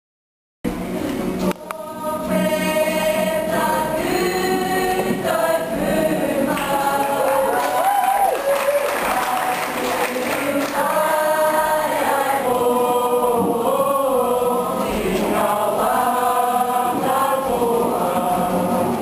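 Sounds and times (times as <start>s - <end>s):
group singing in chorus: 0.8s - 19.0s.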